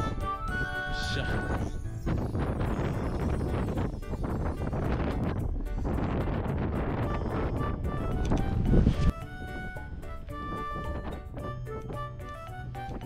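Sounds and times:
background music: 0.0 - 13.0
wind buffeting microphone: 0.0 - 13.0.

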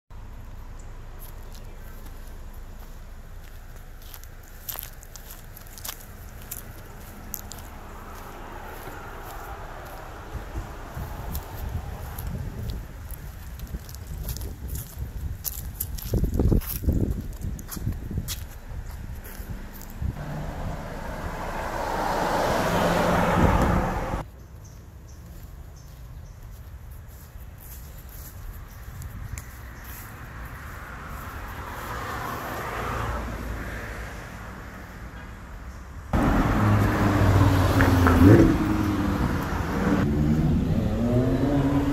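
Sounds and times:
passing vehicle: 0.2 - 26.0, 28.5 - 41.9
wind buffeting microphone: 9.2 - 20.3, 22.6 - 24.3.

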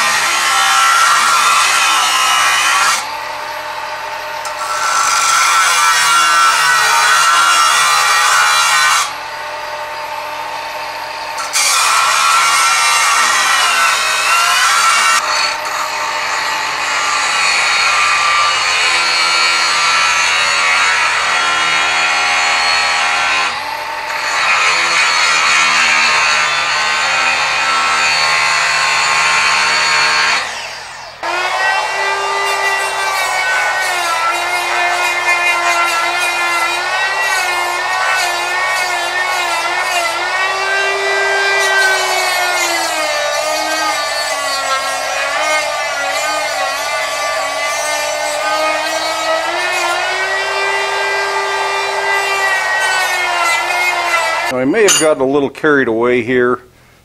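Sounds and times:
die grinder whining: 0.0 - 55.1
angle grinder cutting steel: 0.0 - 55.2.

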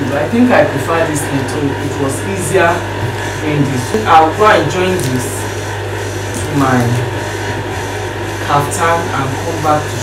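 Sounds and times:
steady low hum: 0.0 - 10.0
woman speaking: 6.4 - 7.1.

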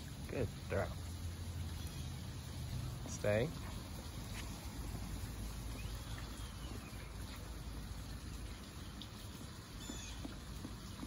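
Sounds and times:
water running along pavement: 0.0 - 11.0.

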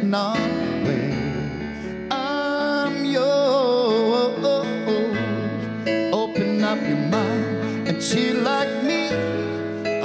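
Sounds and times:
guitar accompaniment: 0.0 - 10.0
man singing: 0.0 - 10.0.

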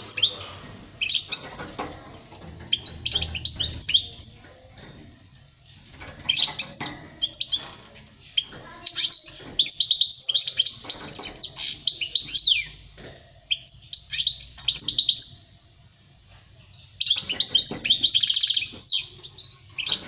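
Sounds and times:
goldfinch twittering song: 0.0 - 4.5, 5.8 - 7.8, 8.4 - 12.8, 13.5 - 15.5, 17.0 - 20.0.

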